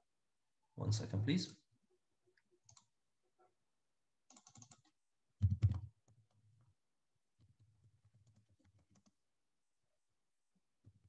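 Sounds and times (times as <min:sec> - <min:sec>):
computer keyboard typing: 0:04.3 - 0:05.9, 0:08.1 - 0:09.2.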